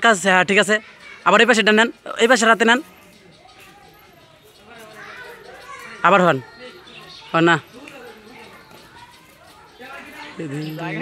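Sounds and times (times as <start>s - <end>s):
faint background voices chattering: 0.0s - 11.0s.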